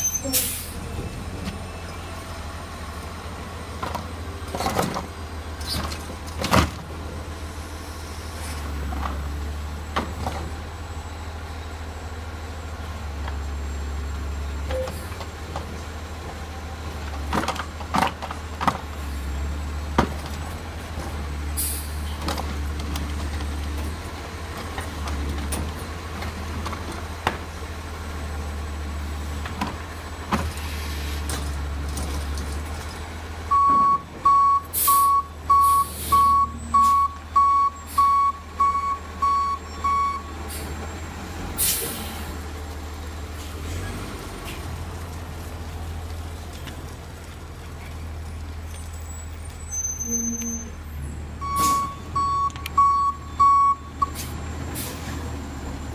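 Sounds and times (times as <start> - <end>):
air brake hiss: 0.2 - 0.8, 21.6 - 22.0, 34.7 - 36.3, 41.6 - 42.3
truck reversing alarm beeping: 14.7 - 15.2, 33.5 - 41.1, 51.4 - 55.9.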